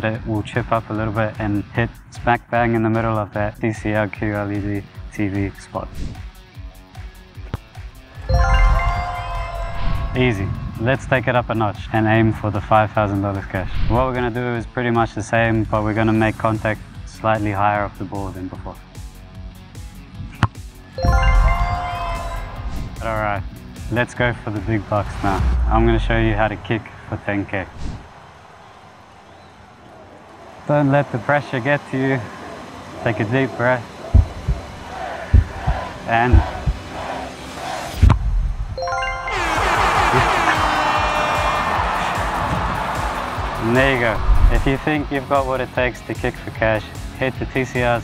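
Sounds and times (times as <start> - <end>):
background music: 0.0 - 27.7, 30.7 - 48.0
background music with a beat: 6.1 - 9.8, 18.8 - 23.9, 34.1 - 36.9, 38.8 - 44.4
jingling win sound effect: 8.2 - 10.4, 21.0 - 22.6, 38.8 - 40.6
deep boom with ringing chime: 21.0 - 22.1.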